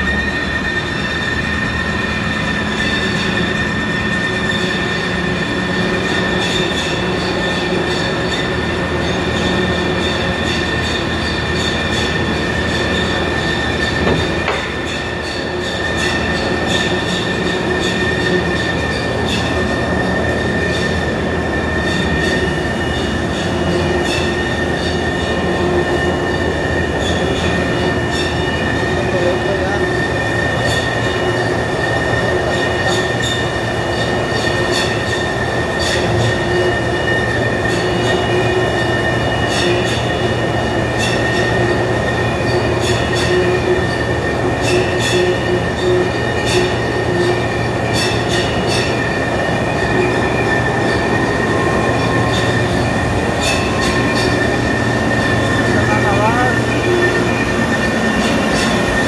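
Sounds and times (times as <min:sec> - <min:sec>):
high-pitched machinery whine: 0:00.0 - 0:59.0.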